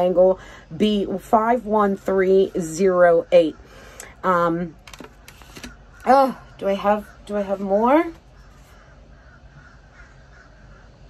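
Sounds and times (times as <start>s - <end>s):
low background rumble: 0.0s - 11.0s
bird cawing: 8.2s - 11.0s.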